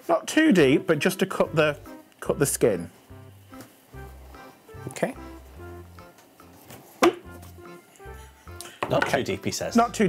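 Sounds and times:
quiet background music: 0.0s - 10.0s
knife knocking on wooden board: 7.0s - 7.3s.

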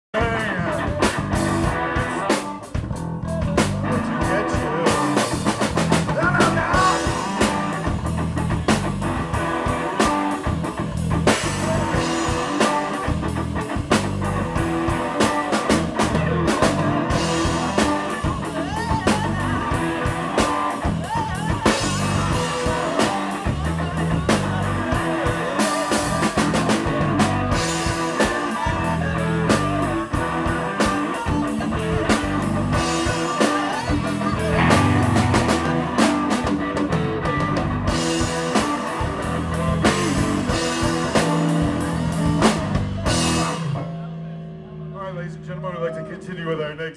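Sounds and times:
bass guitar: 0.1s - 46.9s
drum kit beat: 0.2s - 45.5s
keyboard: 0.2s - 46.9s.

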